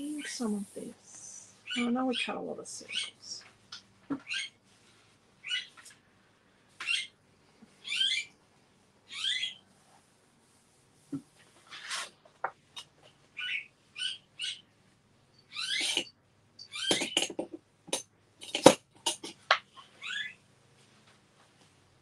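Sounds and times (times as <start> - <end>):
small bird chirping: 5.4 - 5.8, 7.8 - 8.3, 9.1 - 9.6, 13.4 - 14.7, 15.3 - 17.3, 19.8 - 20.4.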